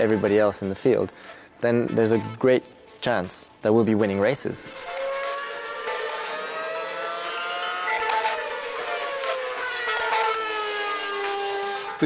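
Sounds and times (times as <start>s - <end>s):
racing car engine at high revs: 4.7s - 12.0s.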